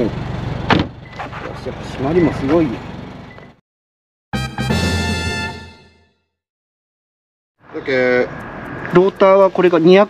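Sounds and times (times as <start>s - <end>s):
outdoor background noise: 0.0s - 3.6s, 7.6s - 10.0s.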